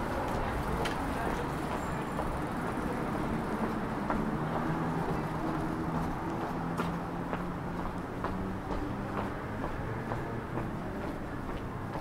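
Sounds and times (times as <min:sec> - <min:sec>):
distant traffic rumble: 0:00.0 - 0:12.0
light footsteps: 0:01.7 - 0:12.0.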